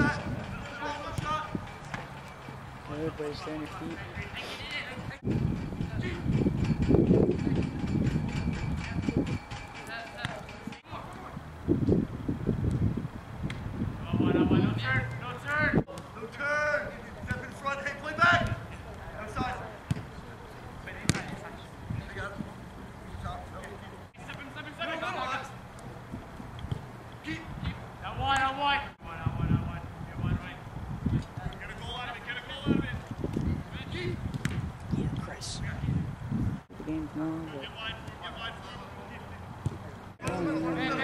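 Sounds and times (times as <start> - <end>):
football being kicked: 21.0 - 21.4.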